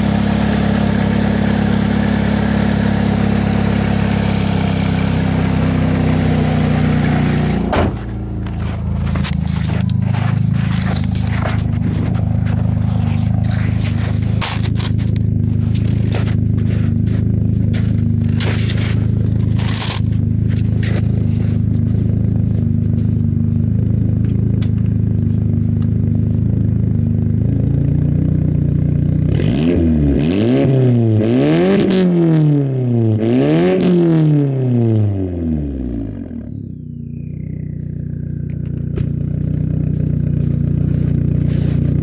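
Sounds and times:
car engine idling and revving: 0.0s - 42.0s.

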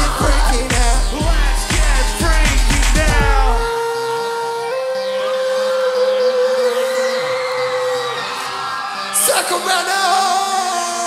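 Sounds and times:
live band breakdown: 0.0s - 3.7s
wavering vocal line: 0.0s - 11.0s.

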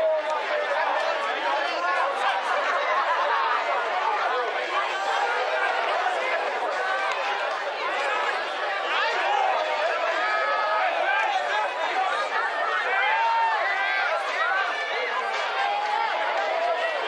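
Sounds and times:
crowd shouting and calling: 0.0s - 17.0s.

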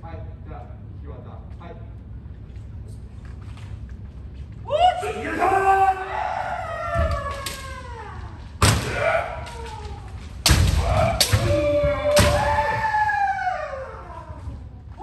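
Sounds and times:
people shouting: 4.7s - 14.7s
bamboo swords hitting armour: 8.6s - 9.4s, 10.4s - 12.6s.

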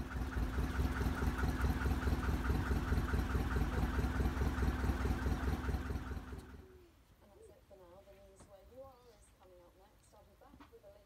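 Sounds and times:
boat engine chugging: 0.0s - 6.6s.

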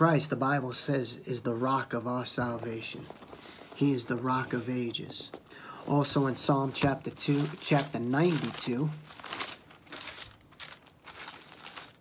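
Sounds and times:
book pages rustling: 2.4s - 12.0s.

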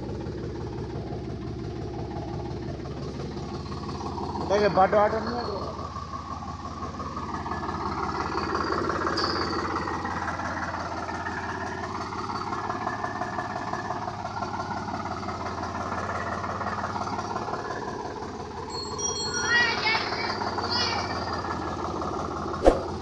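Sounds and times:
tractor diesel engine running: 0.0s - 23.0s.

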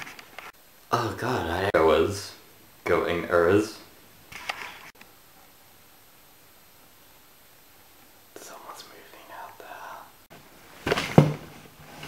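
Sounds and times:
person whispering: 8.3s - 10.3s.

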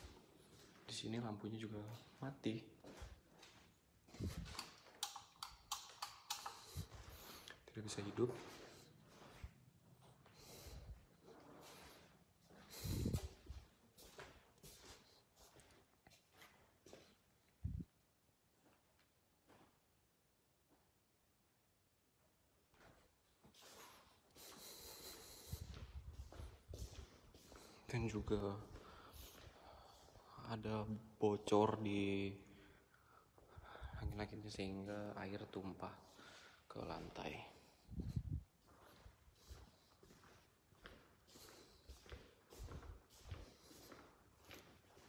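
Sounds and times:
footsteps on tiled floor: 0.0s - 17.6s, 22.7s - 31.0s, 35.8s - 45.0s
light switch clicking: 5.0s - 6.6s.

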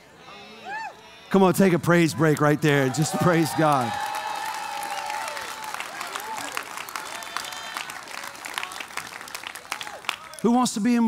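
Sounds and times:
congregation applauding: 2.2s - 11.0s.

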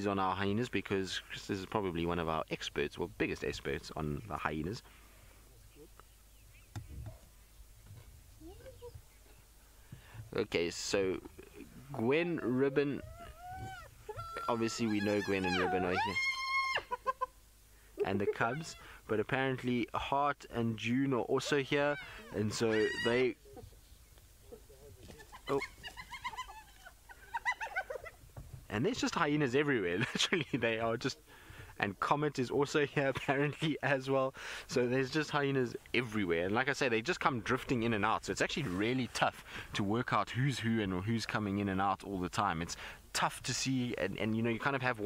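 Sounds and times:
faint rising animal call: 11.8s - 17.0s
hyenas squealing: 12.2s - 17.2s, 18.0s - 19.0s, 21.3s - 23.6s, 24.5s - 28.2s.

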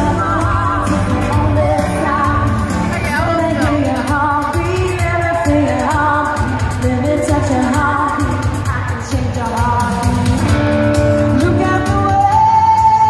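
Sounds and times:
band playing steady beat: 0.0s - 13.0s
woman singing with vibrato: 0.0s - 13.0s.

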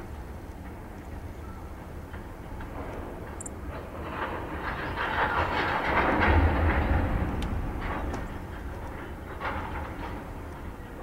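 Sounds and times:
train wheels on rails: 0.0s - 11.0s.

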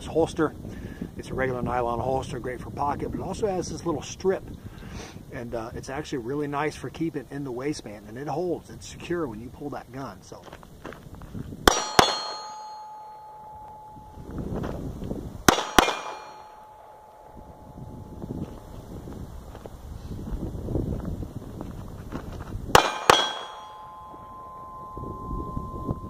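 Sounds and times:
pistol shots: 11.7s - 12.7s, 15.5s - 17.2s, 22.7s - 23.8s
steel target clanging: 11.7s - 14.8s, 15.5s - 18.4s, 22.8s - 26.0s.

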